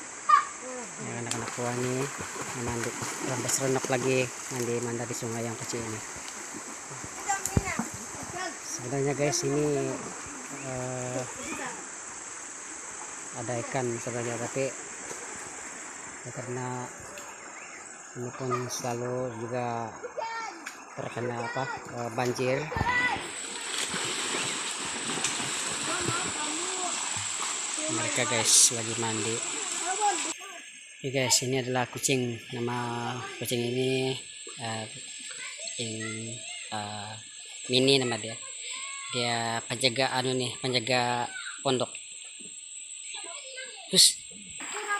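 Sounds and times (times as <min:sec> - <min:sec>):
children splashing in water: 0:00.0 - 0:16.2, 0:20.0 - 0:30.7, 0:33.2 - 0:39.2, 0:44.6 - 0:44.9
running water: 0:00.0 - 0:44.9
faint children's voices: 0:25.8 - 0:27.2, 0:35.3 - 0:39.2.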